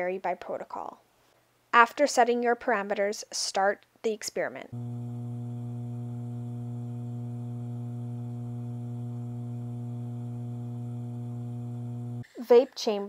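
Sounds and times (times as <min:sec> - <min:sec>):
pump humming: 0:04.8 - 0:12.2.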